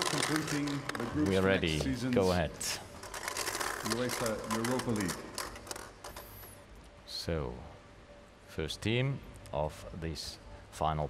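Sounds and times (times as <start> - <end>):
plastic balls clicking: 2.9 - 6.4.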